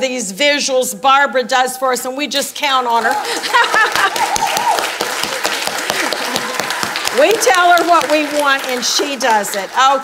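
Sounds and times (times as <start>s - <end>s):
audience applauding: 3.0s - 10.0s.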